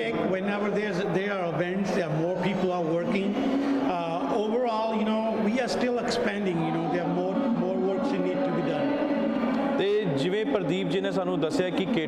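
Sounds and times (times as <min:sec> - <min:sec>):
man talking: 0:00.0 - 0:08.9, 0:09.8 - 0:12.0.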